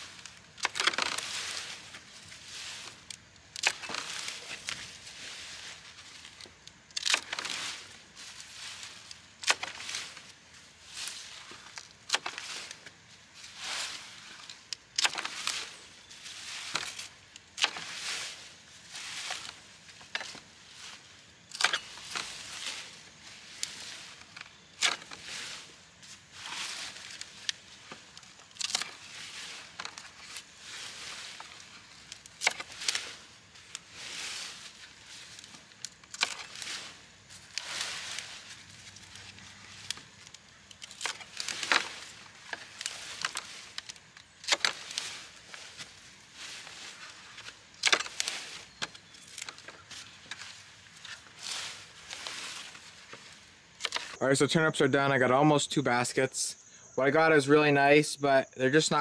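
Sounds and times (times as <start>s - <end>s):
leafy greens rustling: 0.0s - 56.4s.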